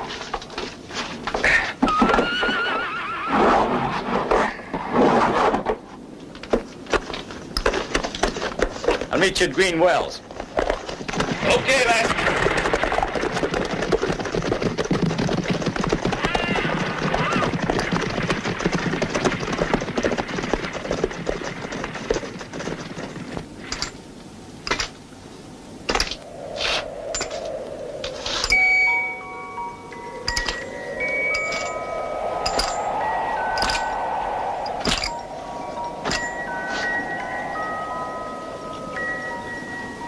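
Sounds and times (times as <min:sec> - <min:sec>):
horses and riders moving: 0:06.7 - 0:23.7
eerie sinking and rising tone: 0:26.2 - 0:40.0
ringing chime-like notes: 0:28.4 - 0:40.0.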